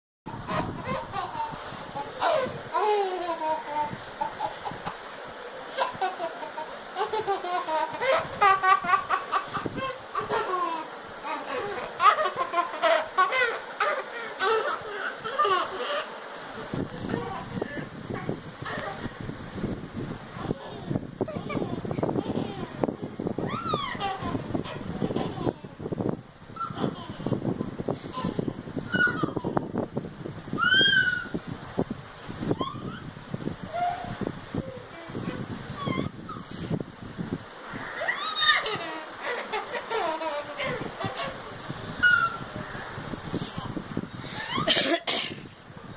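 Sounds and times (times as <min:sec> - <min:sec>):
young child laughing: 0:00.3 - 0:19.2, 0:20.4 - 0:25.9, 0:38.0 - 0:42.5, 0:43.5 - 0:45.4
small child squealing: 0:23.4 - 0:24.0, 0:28.9 - 0:29.5, 0:30.6 - 0:31.4, 0:32.5 - 0:33.1, 0:35.8 - 0:36.4, 0:37.8 - 0:39.4, 0:42.0 - 0:42.4, 0:44.4 - 0:44.7.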